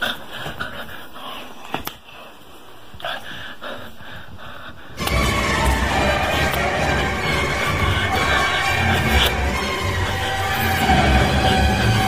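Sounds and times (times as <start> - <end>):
rapid heavy panting: 0.0 - 2.3, 3.0 - 12.0.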